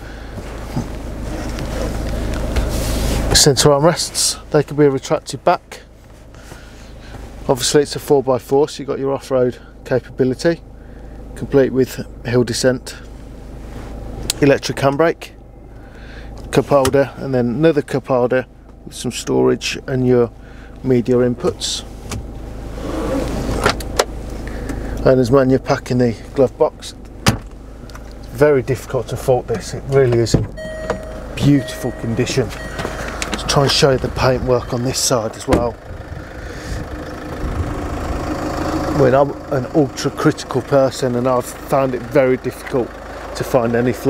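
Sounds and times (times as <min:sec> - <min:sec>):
diesel engine idling: 0:00.0 - 0:44.0
hand rustling: 0:00.5 - 0:03.3
wind-like noise on microphone: 0:35.9 - 0:37.8.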